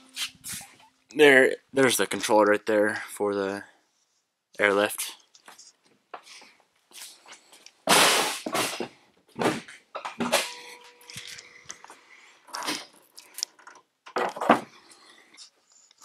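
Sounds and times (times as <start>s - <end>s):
knocks and handling noises: 8.5s - 16.0s
faint steady tone: 10.2s - 12.3s.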